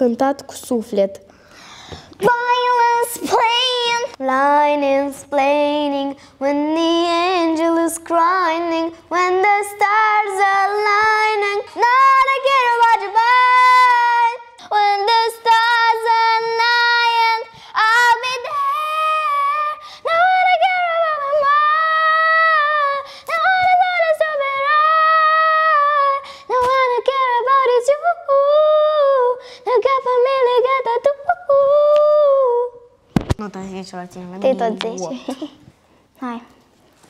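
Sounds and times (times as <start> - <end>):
girl singing long note: 6.4 - 32.8
child speaking: 33.4 - 35.6, 36.2 - 36.5.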